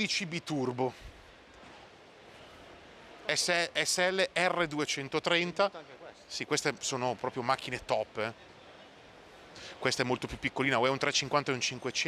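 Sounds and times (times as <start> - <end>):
indoor exhibition hall background: 0.0 - 12.0.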